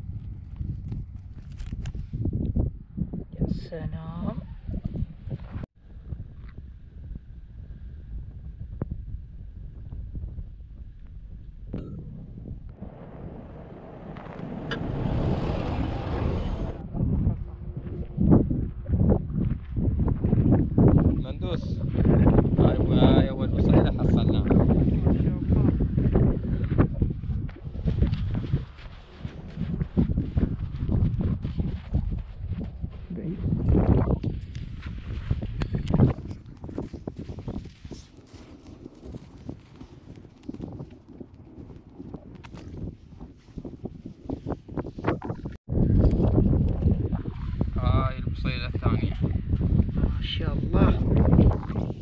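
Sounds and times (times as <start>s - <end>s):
wind rumble on microphone: 0.0s - 52.0s
car driving over sand: 12.8s - 16.8s
fingers scraping in dry sand: 34.3s - 45.2s.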